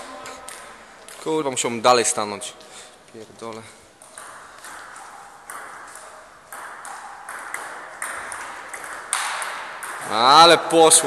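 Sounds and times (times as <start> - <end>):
table tennis ball clicking: 4.0 - 10.1.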